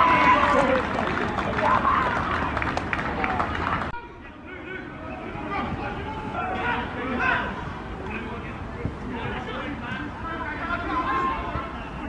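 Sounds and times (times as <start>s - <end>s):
players and spectators shouting: 0.0s - 12.0s.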